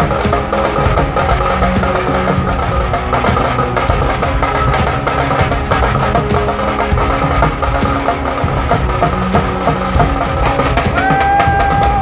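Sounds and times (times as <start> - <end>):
hand drum quick rhythm: 0.0 - 12.0.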